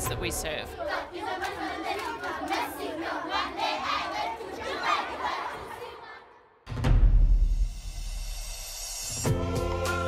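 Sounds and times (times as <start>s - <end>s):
children singing and shouting: 0.4s - 6.6s.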